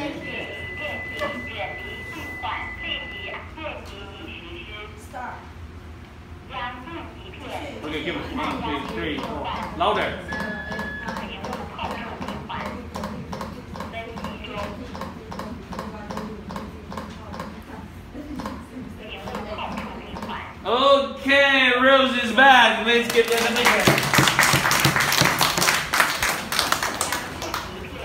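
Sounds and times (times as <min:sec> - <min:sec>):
voices counting: 0:00.0 - 0:05.4, 0:06.4 - 0:23.9
cpr manikin clicking: 0:08.8 - 0:17.6
small group clapping: 0:23.0 - 0:28.0.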